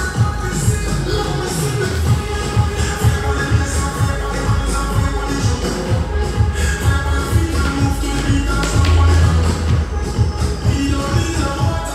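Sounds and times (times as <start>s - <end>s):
dancehall music with heavy bass: 0.0s - 11.9s.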